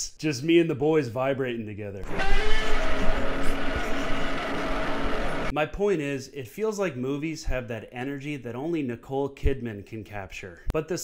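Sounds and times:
loud buzzing rumble: 2.0 - 5.5.

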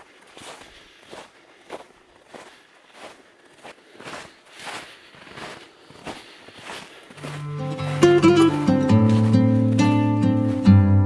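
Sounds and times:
footsteps crunching in snow: 0.0 - 11.0.

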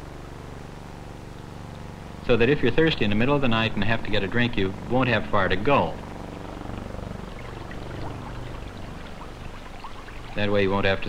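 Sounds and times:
steady low hum: 0.0 - 11.0
water pouring and gurgling: 7.2 - 10.6.

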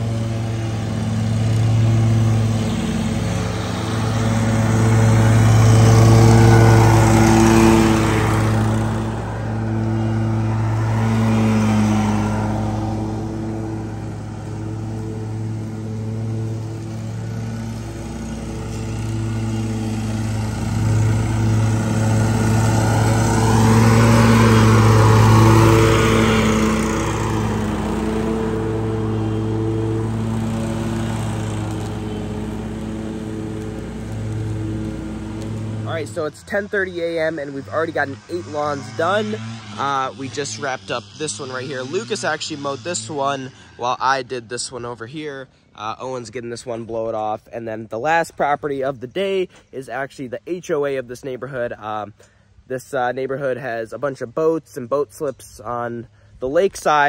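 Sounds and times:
lawn mower engine running: 0.0 - 43.1
mower blades cutting grass: 0.0 - 43.4.

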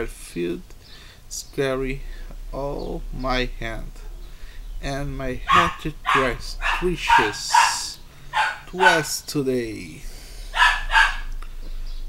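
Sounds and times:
dog barking: 5.4 - 9.1, 10.5 - 11.3.

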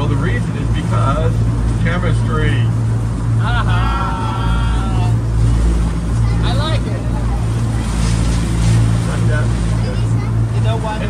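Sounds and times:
boat engine droning: 0.0 - 11.0
water splashing and churning: 0.0 - 11.0.

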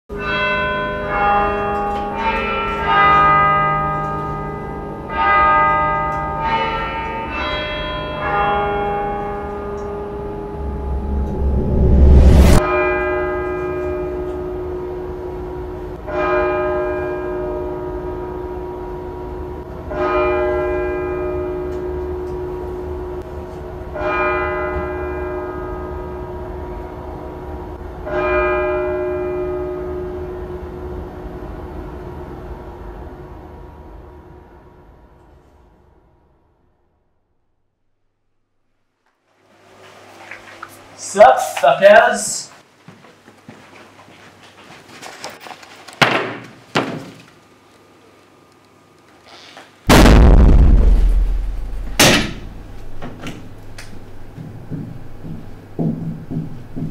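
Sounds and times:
clock tower bells chiming a tune: 0.1 - 10.6, 12.7 - 23.2, 24.0 - 27.1, 28.1 - 30.3
rising whoosh: 10.4 - 12.6, 49.9 - 53.0.

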